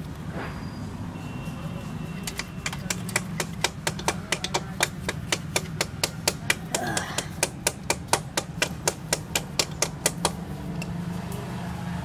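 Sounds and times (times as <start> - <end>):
sharp metal clicks of hand tool: 2.2 - 11.0.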